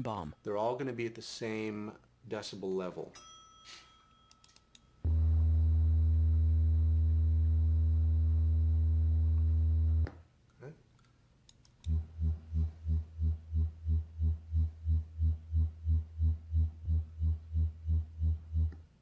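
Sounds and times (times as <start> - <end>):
low test tone hum: 5.0 - 10.1, 11.9 - 19.0
pulsing low tone: 5.1 - 10.1, 11.9 - 18.8.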